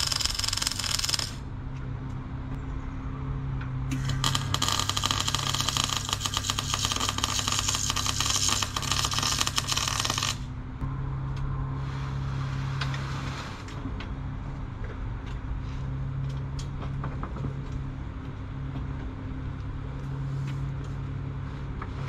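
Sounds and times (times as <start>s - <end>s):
welding arc crackling: 0.0s - 1.4s, 3.9s - 10.5s
steady low hum: 0.0s - 22.0s.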